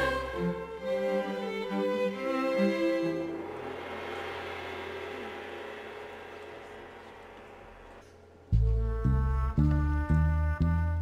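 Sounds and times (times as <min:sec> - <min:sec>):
low hum: 0:00.0 - 0:10.4.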